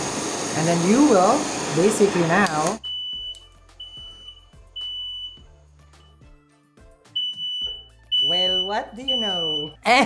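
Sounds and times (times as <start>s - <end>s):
smoke alarm beeping: 2.8s - 6.2s, 7.2s - 9.8s.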